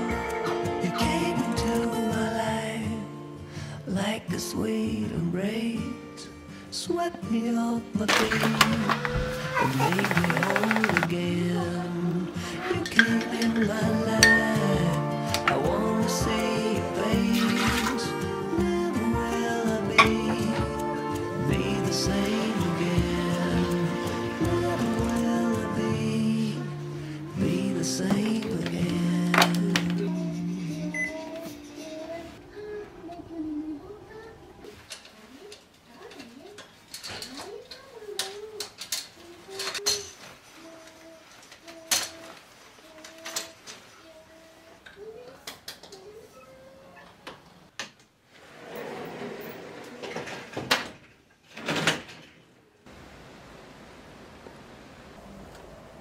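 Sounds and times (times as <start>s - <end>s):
background music: 0.0s - 32.4s
rustling: 8.1s - 47.2s.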